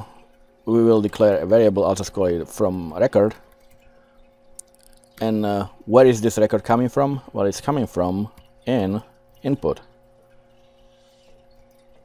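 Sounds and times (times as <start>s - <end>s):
faint electrical hum: 0.0s - 12.0s.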